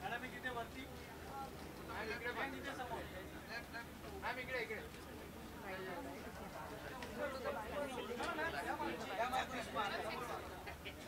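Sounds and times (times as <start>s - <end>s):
indistinct chatter of people: 0.0s - 11.0s.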